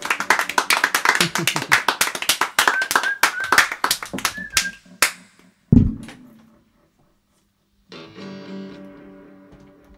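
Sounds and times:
audience clapping: 0:00.0 - 0:05.4
low thump: 0:05.7 - 0:06.2.

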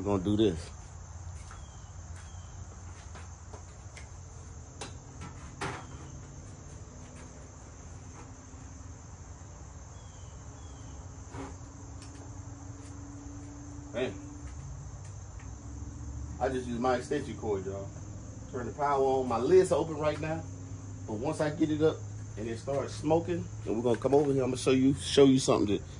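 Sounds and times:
insects chirring: 0:00.0 - 0:25.9.

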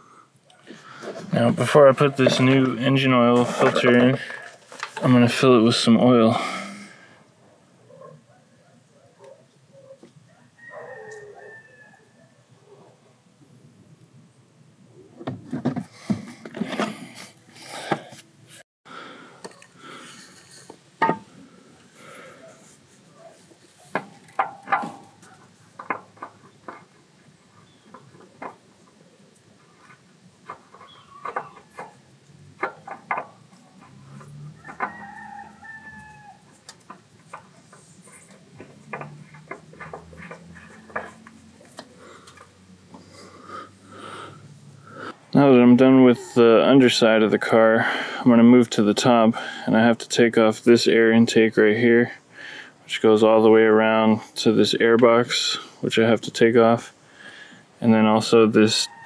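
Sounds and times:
sharp clicks and light knocks: 0:23.9 - 0:27.0, 0:32.6 - 0:35.0, 0:36.5 - 0:43.0.

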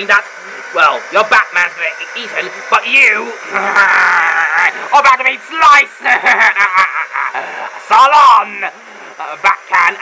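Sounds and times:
man laughing: 0:03.2 - 0:05.0, 0:06.0 - 0:07.9.

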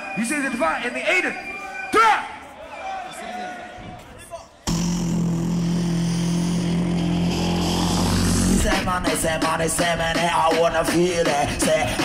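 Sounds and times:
faint crowd voices: 0:00.0 - 0:04.7
vocal bass drone through pa: 0:04.7 - 0:11.6.

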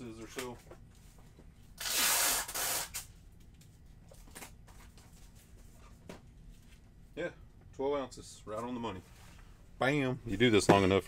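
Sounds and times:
loud rasping noises: 0:01.8 - 0:03.1.

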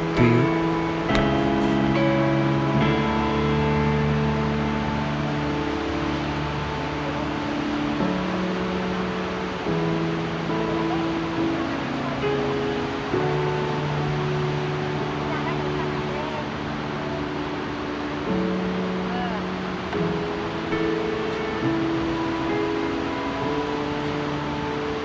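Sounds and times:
background music sustained chords: 0:00.0 - 0:25.0.

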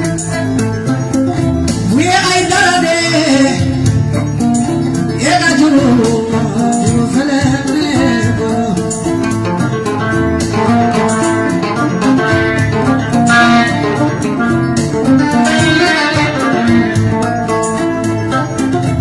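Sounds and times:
bass: 0:00.0 - 0:19.0
percussion beat: 0:00.0 - 0:19.0
plucked guitar lines: 0:00.0 - 0:19.0.

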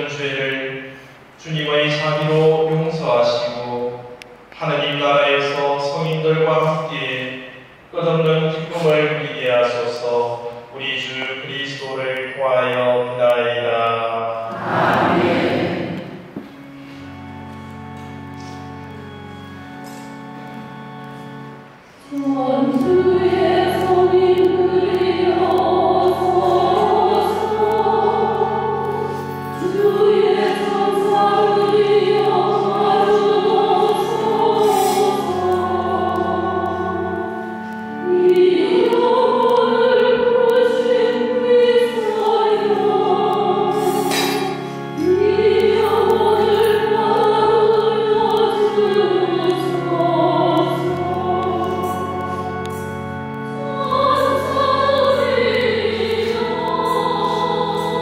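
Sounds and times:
organ holding low notes: 0:00.0 - 0:58.0
choir singing a hymn: 0:08.3 - 0:17.3, 0:19.8 - 0:58.0.

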